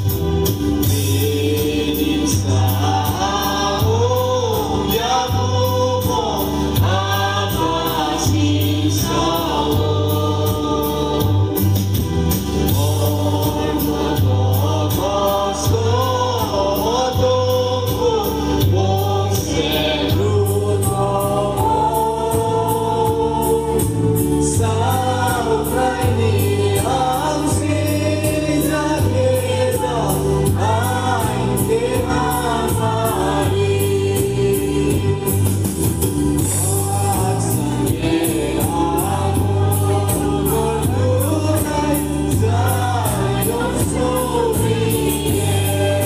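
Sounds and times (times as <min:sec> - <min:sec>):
instrumental backing with bass and beat: 0:00.0 - 0:46.0
mixed choir singing a gospel hymn: 0:00.0 - 0:46.0.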